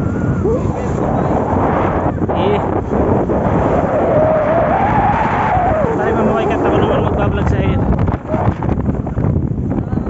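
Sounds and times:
boat engine and hull noise: 0.0 - 10.0.

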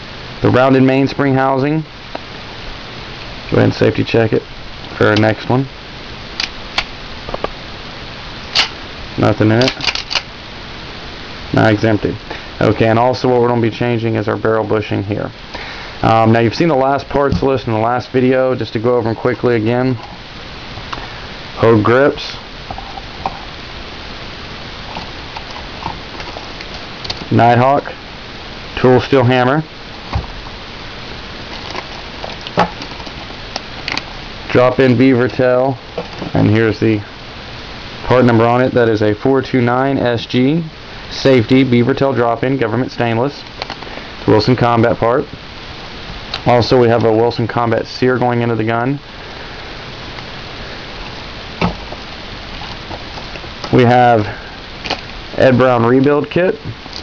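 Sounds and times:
steady hiss: 0.0 - 57.0.

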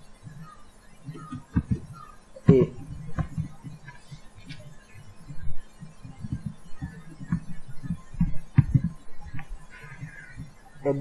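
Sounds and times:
faint steady hum: 0.0 - 11.0
keyboard typing thumps: 0.2 - 10.6.

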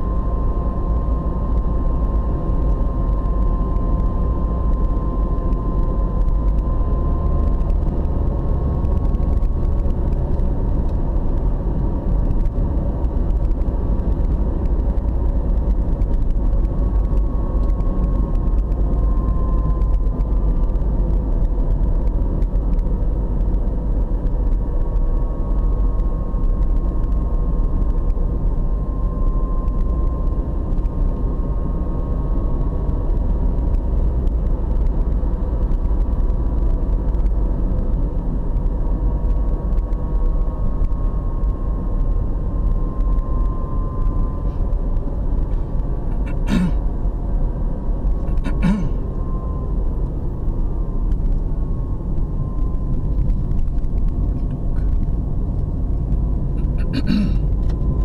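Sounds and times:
car engine and road noise: 0.0 - 58.0
faint wavering whine: 0.0 - 58.0.

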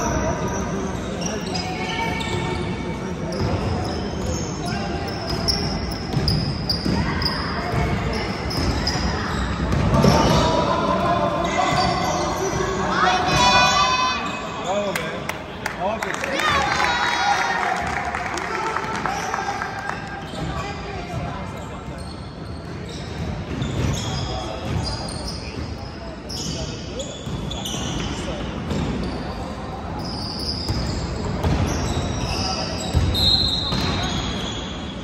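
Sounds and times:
sneakers squeaking: 0.0 - 15.2, 18.8 - 35.0.

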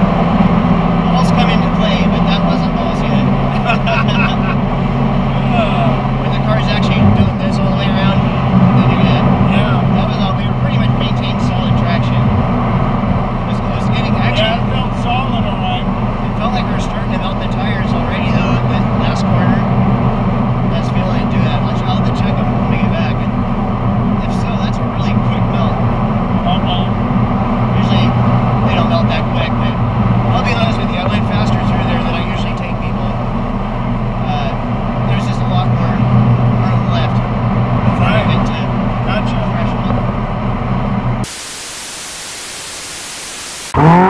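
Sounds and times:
car engine road and wind drone: 0.0 - 44.0
people talking: 1.1 - 4.6, 5.3 - 12.3, 13.5 - 19.7, 20.7 - 23.4, 24.2 - 25.8, 26.4 - 26.9, 27.7 - 33.2, 34.2 - 36.0, 36.6 - 37.2, 37.9 - 40.1
tv static hiss: 41.2 - 43.8.

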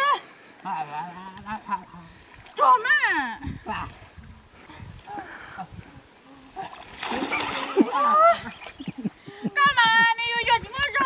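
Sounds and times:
person splashing into water: 6.6 - 8.8.

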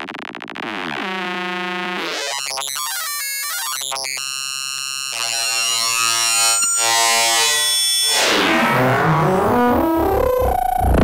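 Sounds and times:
buzzy synthesizer drone: 5.1 - 11.0.

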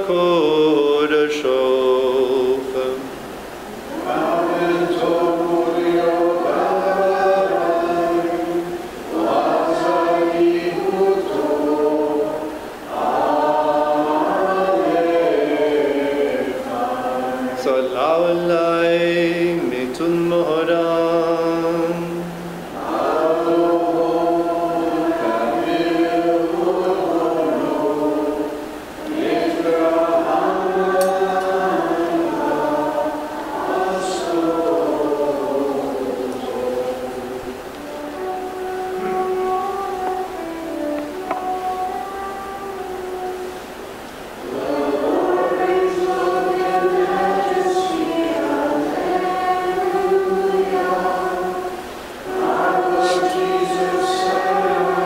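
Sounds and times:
voices chanting together: 0.0 - 55.0.

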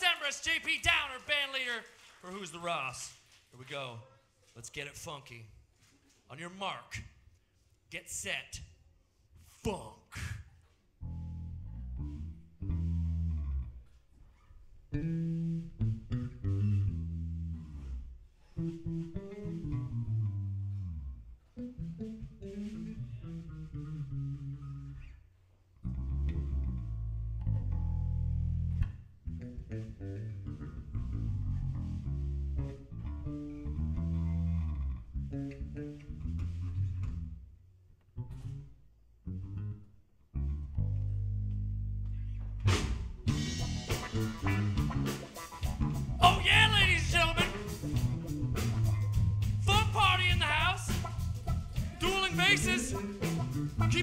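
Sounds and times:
electric bass playing funk: 11.0 - 13.8, 14.9 - 25.1, 25.8 - 37.4, 38.2 - 54.0.

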